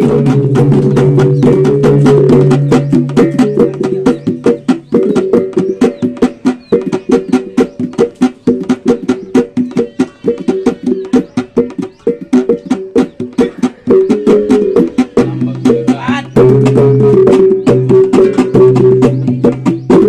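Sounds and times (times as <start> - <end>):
traditional percussion music: 0.0 - 20.0.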